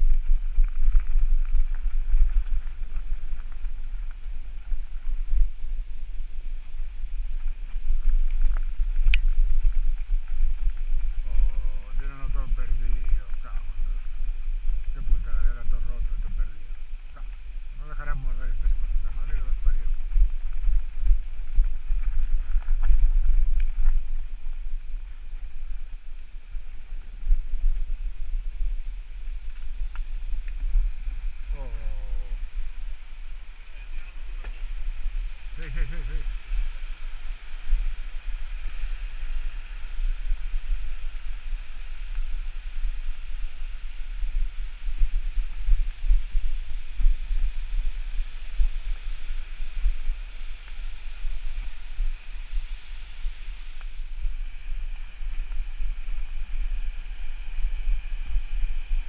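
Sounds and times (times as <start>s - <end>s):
wind and bike vibration rumble: 0.0s - 59.0s.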